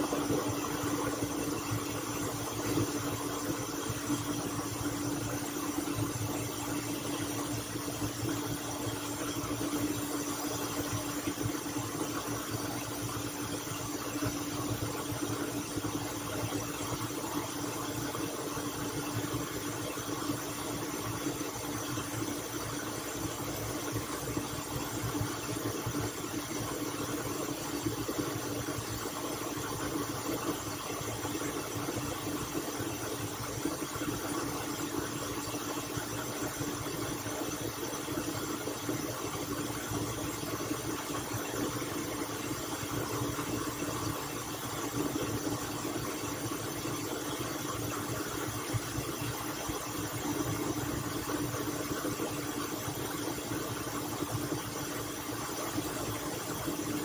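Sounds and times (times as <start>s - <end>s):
blender motor running: 0.0s - 57.0s.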